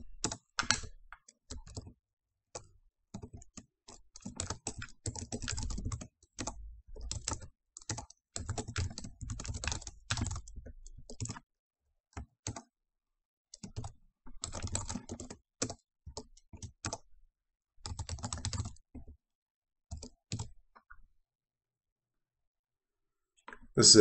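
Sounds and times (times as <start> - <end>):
computer keyboard typing: 0.0 - 2.0, 2.6 - 11.4, 12.2 - 12.7, 13.5 - 17.0, 17.8 - 19.1, 19.9 - 20.6.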